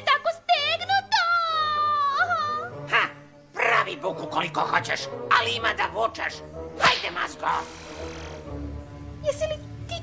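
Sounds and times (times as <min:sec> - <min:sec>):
background music: 0:00.0 - 0:10.0
sharp swish: 0:06.8 - 0:08.4.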